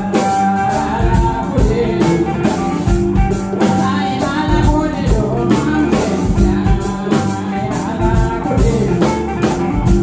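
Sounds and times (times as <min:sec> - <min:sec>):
drum kit beat: 0:00.0 - 0:10.0
electric guitars: 0:00.0 - 0:10.0.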